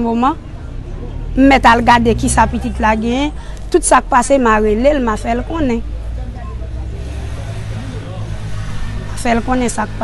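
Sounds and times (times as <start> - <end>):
faint voices: 0.0 - 10.0
vehicle engine humming: 0.0 - 10.0.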